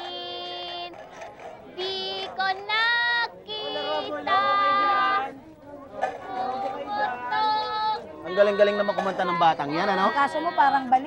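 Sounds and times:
girl singing slow song: 0:01.8 - 0:05.3.

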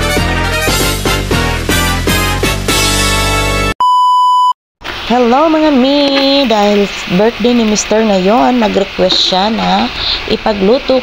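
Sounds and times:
electronic beep: 0:03.8 - 0:04.5.

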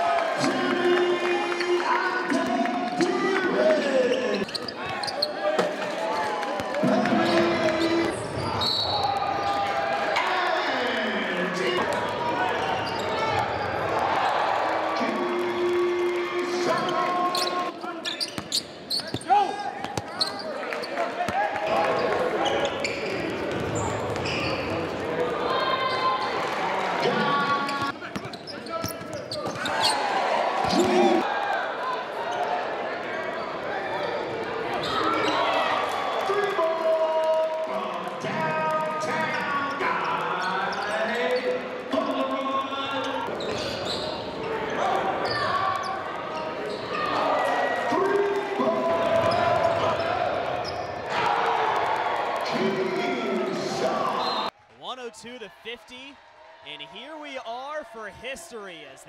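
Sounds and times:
sneakers squeaking: 0:04.1 - 0:05.8, 0:07.1 - 0:09.7, 0:11.9 - 0:13.9, 0:16.8 - 0:25.1, 0:27.2 - 0:31.2, 0:34.8 - 0:35.5, 0:43.0 - 0:47.2, 0:49.2 - 0:51.0
voices calling out: 0:53.9 - 0:59.0.

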